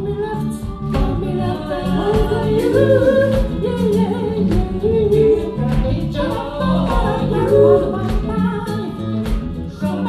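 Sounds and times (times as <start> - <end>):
bass guitar: 0.0 - 10.0
drums: 0.0 - 10.0
voices singing held notes: 0.4 - 9.2.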